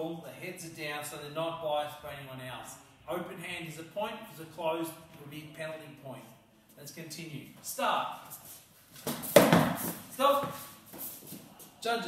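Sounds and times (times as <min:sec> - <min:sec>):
padded sticks scuffling and striking: 0:08.2 - 0:11.8.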